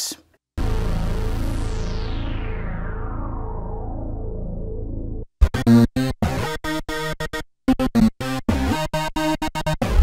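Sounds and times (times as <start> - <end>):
synthesizer bass note: 0.6 - 7.9.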